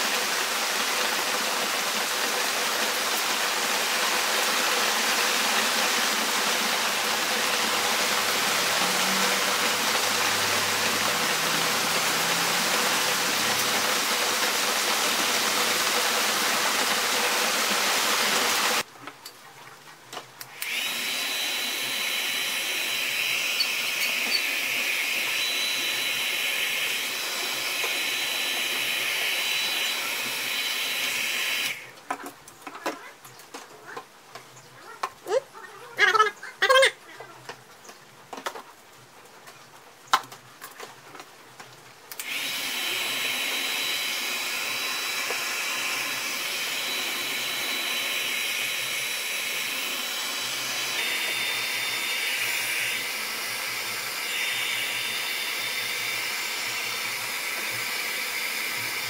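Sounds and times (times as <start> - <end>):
hair dryer running: 0.0 - 18.9, 20.5 - 31.9, 42.1 - 59.0
thin high whine: 20.9 - 31.9, 42.4 - 53.3.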